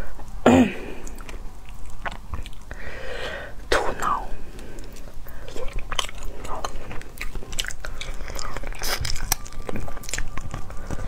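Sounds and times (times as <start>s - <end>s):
person chewing and crunching: 0.0s - 3.0s, 3.7s - 11.0s.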